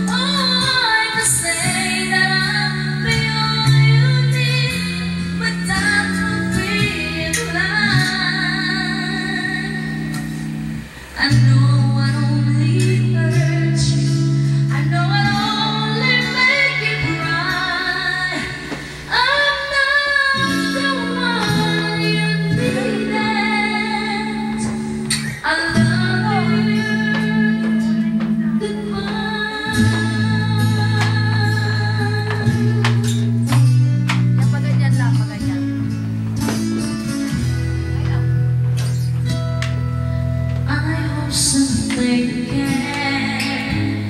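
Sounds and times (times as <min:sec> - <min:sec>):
woman singing into microphone: 0:00.0 - 0:39.6, 0:40.5 - 0:44.0
sustained accompaniment chords: 0:04.7 - 0:44.0
singer breathing in: 0:18.7 - 0:19.1.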